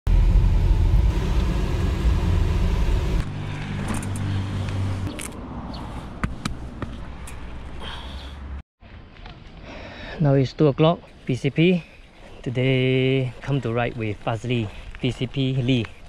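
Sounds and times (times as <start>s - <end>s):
car cabin rumble: 0.1s - 4.1s
outdoor hum: 0.1s - 9.9s.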